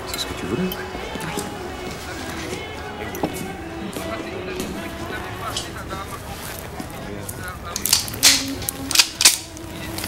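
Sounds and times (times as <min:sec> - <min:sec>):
handgun metallic clacks: 0:07.7 - 0:09.6.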